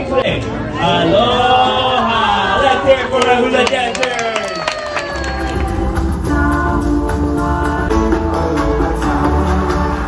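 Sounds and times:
crowd clapping and cheering: 3.0 - 6.7
person whooping: 4.4 - 5.6.

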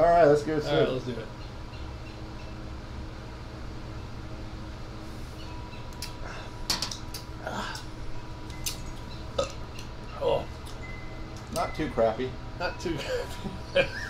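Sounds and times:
steady low hum: 0.0 - 14.0
men sipping and swallowing: 7.0 - 10.8.

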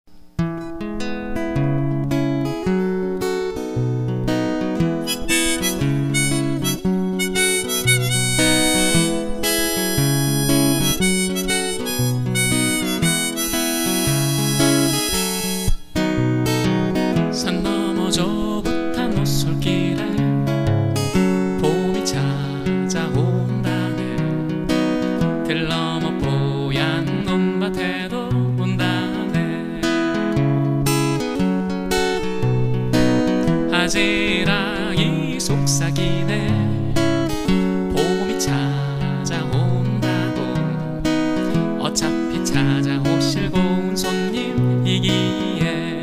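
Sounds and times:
acoustic guitar: 0.1 - 46.0
sustained melody of held notes: 4.8 - 16.9.

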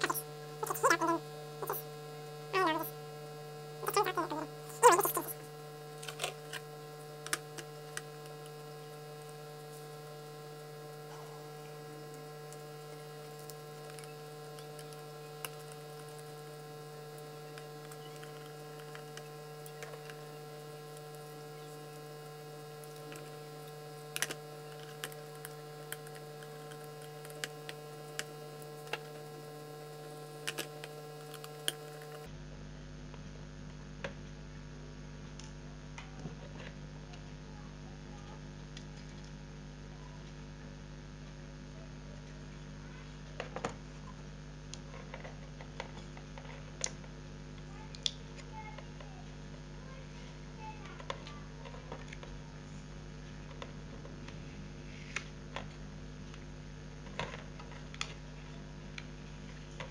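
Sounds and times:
electrical mains hum: 0.0 - 59.9.

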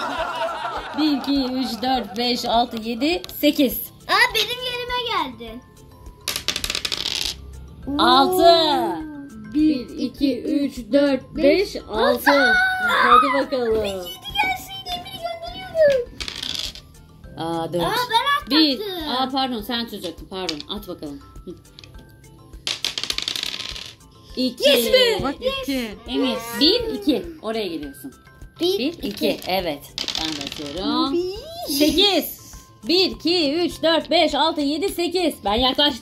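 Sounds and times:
dice clattering on table: 6.2 - 7.4, 15.9 - 16.9, 20.0 - 20.8, 22.6 - 24.0, 29.0 - 30.8.

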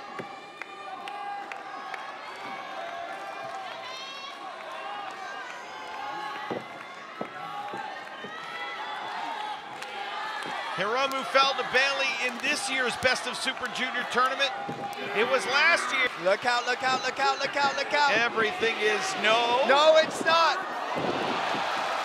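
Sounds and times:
crowd calling out: 0.0 - 22.0.

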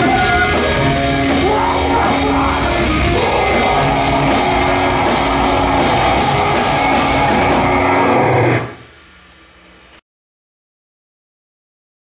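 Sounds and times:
live metal band playing: 0.0 - 8.8.

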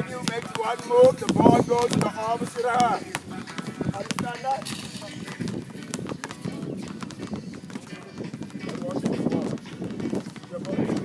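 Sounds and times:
basketball bouncing on hard court: 0.0 - 11.0.

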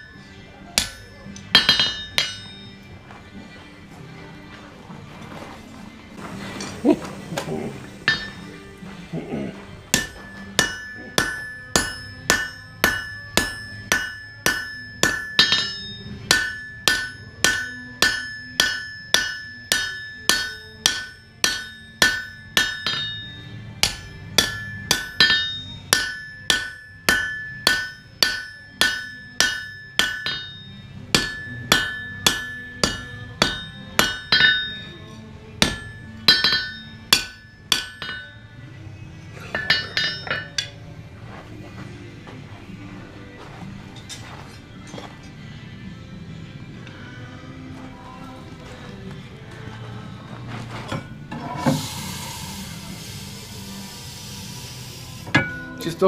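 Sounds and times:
hammer striking metal on anvil: 0.0 - 2.9, 8.0 - 8.6, 9.9 - 38.6, 39.5 - 40.8, 55.2 - 56.0.

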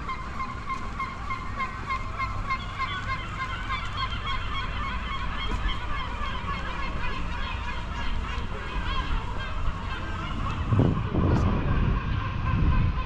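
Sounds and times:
flock of birds calling: 0.0 - 13.0
low background rumble: 0.0 - 13.0.

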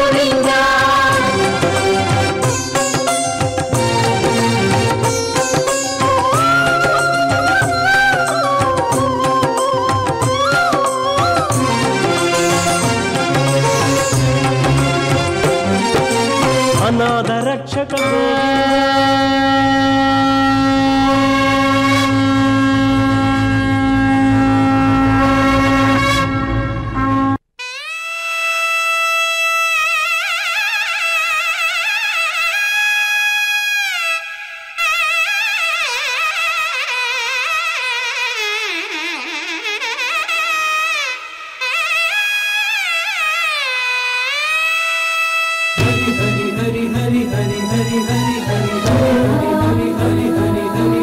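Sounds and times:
wind instrument sustained note: 0.0 - 16.8, 18.0 - 32.6, 38.4 - 51.0
double-reed pipe melody: 0.0 - 17.4, 18.0 - 51.0
steady drone: 45.8 - 51.0.

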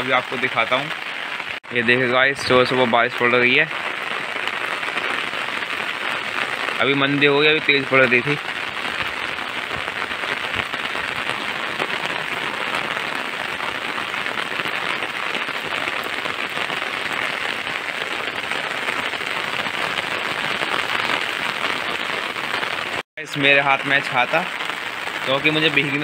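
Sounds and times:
rain on concrete roof: 0.0 - 26.0.

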